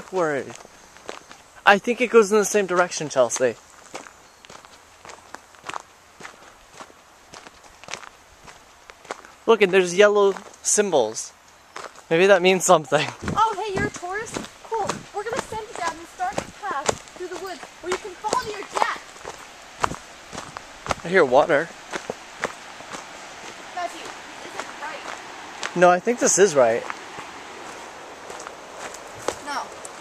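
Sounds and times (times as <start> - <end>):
footsteps on gravel: 0.0 - 1.4, 2.7 - 10.7, 11.7 - 12.1, 12.9 - 30.0.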